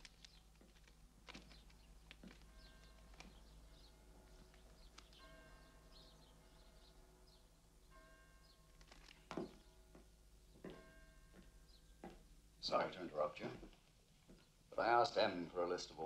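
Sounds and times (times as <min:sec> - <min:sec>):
distant bird chirps: 0:00.0 - 0:12.1.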